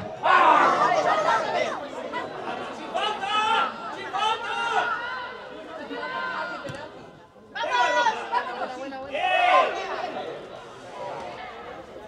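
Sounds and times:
people shouting: 0:00.1 - 0:01.8.

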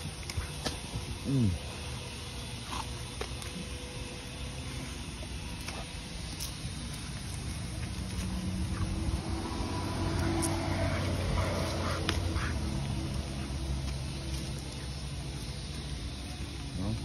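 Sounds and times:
passing vehicle engine hum: 0:01.4 - 0:17.0.

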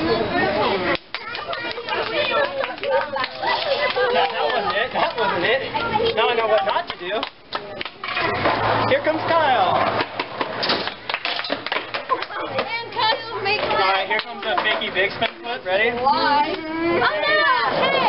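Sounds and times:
audience chatter: 0:00.0 - 0:18.0.

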